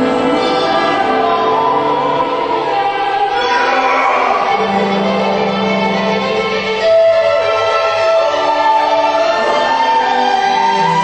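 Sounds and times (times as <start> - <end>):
choir singing held notes: 0.0 - 11.0.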